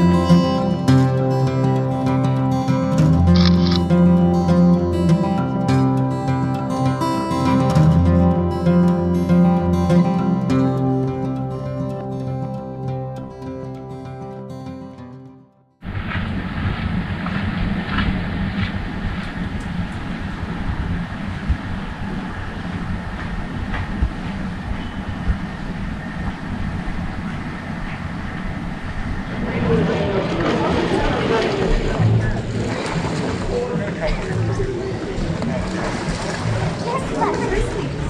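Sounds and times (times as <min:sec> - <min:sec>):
wind noise on microphone: 0:15.8 - 0:33.3
steady outdoor rumble: 0:15.8 - 0:38.0
people's voices: 0:29.3 - 0:38.0.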